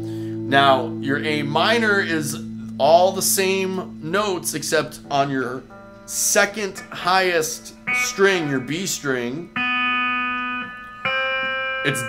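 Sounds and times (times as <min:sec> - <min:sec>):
electric guitar chord strummed: 0:00.0 - 0:12.0.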